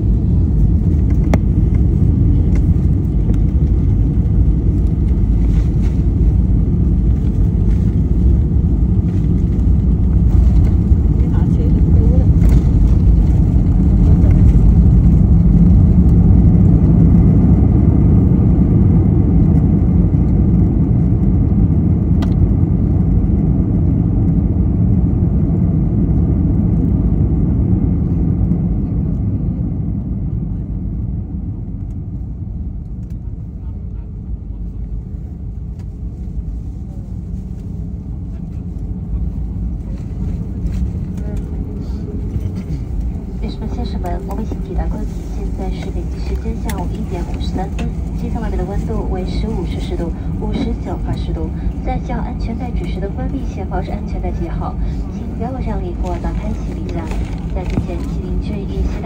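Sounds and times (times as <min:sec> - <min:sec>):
airliner engine and wheel rumble: 0:00.0 - 0:59.0.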